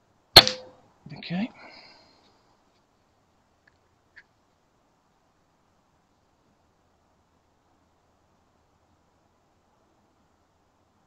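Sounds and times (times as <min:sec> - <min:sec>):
air rifle shot: 0:00.4 - 0:00.7.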